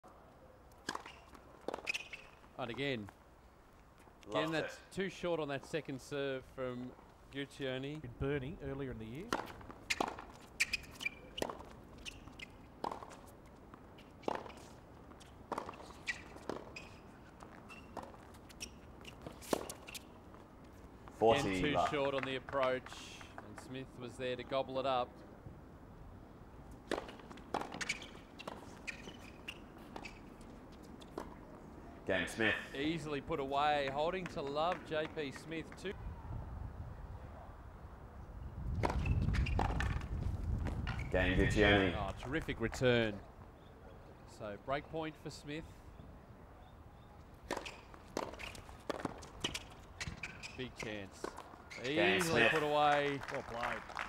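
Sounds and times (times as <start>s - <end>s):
tennis ball bouncing: 0.8s - 2.5s, 9.2s - 20.1s, 26.7s - 31.4s, 47.4s - 50.5s
shoe squeaks: 0.8s - 2.6s, 9.2s - 20.4s, 27.1s - 31.3s, 38.8s - 40.1s, 40.8s - 41.9s, 46.6s - 52.5s
racquet striking tennis ball: 9.2s - 13.2s, 26.8s - 28.6s.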